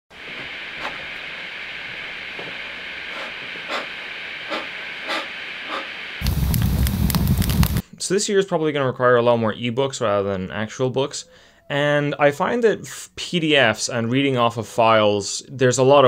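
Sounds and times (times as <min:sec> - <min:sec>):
fire crackling: 0:00.1 - 0:07.8
rush of flame: 0:00.2 - 0:07.8.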